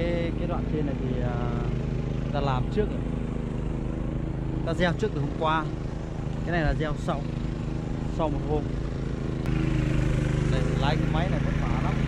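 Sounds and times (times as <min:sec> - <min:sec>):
walking tractor engine running: 0:00.0 - 0:12.0.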